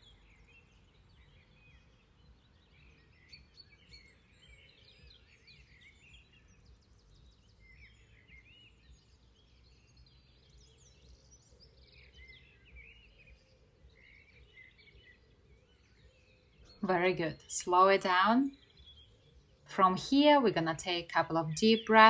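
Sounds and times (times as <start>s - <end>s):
faint birdsong: 0.0s - 22.0s.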